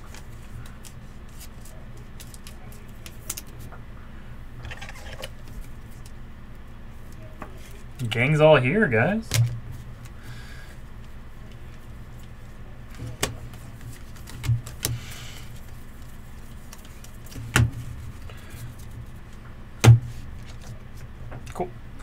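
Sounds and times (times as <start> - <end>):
low steady hum: 0.0 - 22.0
cards clicking: 0.1 - 3.6
cards sliding against cards: 0.1 - 3.6, 4.7 - 6.1, 13.0 - 19.0.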